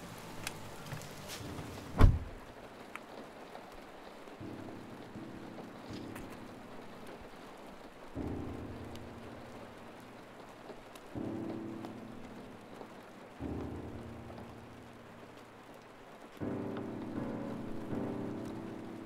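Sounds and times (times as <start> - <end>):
steady rain falling: 0.0 - 19.0.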